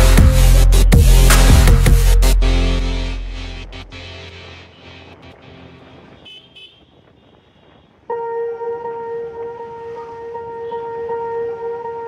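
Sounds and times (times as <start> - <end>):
moving motorcycle engine and road noise: 4.4 - 12.0.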